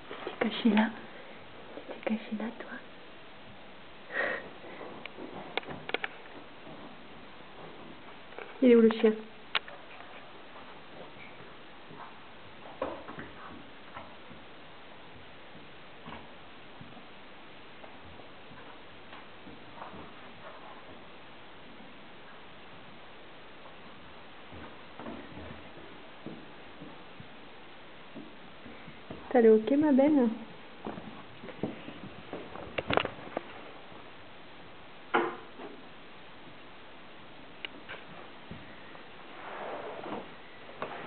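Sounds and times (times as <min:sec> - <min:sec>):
steady background hiss: 0:00.0 - 0:41.0.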